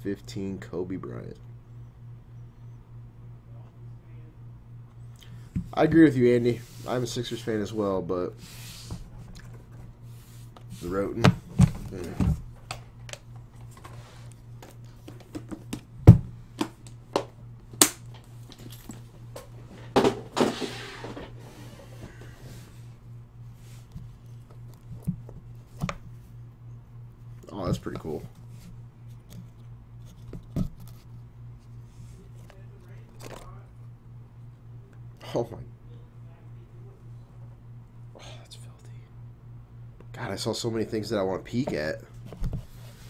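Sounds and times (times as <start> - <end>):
low steady hum: 0.0 - 43.0
soft hissy noise: 5.7 - 9.2.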